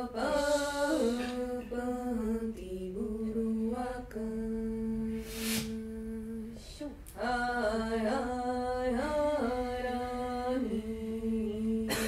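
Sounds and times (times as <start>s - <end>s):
breathy hiss: 0.1s - 1.8s, 5.1s - 5.9s.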